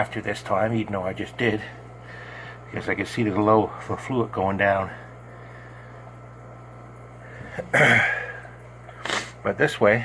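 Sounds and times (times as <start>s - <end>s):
steady low hum: 0.0s - 10.0s
man clearing throat: 7.6s - 8.5s.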